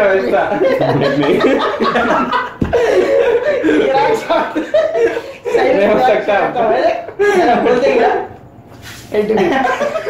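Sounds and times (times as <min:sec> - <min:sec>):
men laughing: 0:00.1 - 0:08.1, 0:09.3 - 0:10.0.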